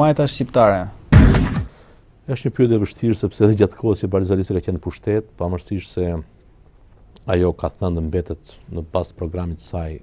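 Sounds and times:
loud thump-like burst: 0:01.1 - 0:01.8.

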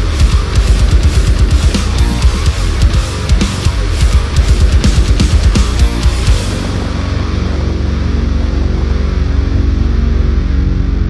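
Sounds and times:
low sustained electric guitar notes: 0:00.0 - 0:11.0.

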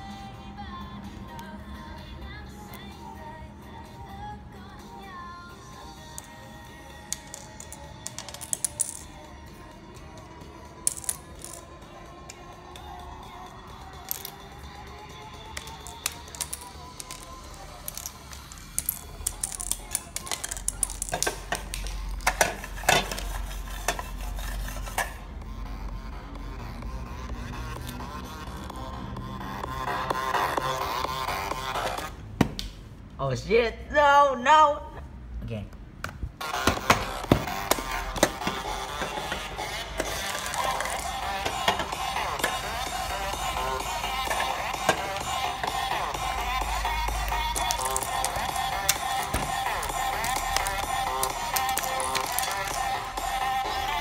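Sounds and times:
fingers tapping plastic cube pieces: 0:15.6 - 0:22.6, 0:47.2 - 0:52.8
electronic dance music: 0:25.2 - 0:32.2, 0:36.4 - 0:54.0.

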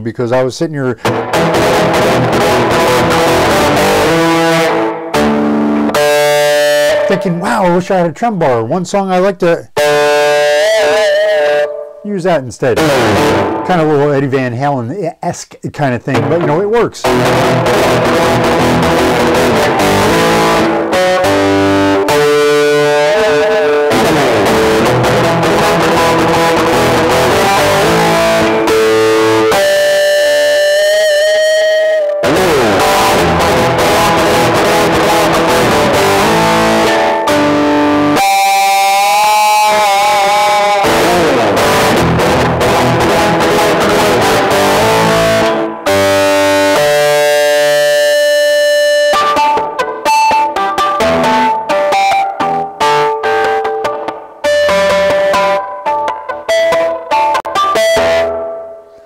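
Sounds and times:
distorted electric guitar: 0:00.7 - 0:59.0.

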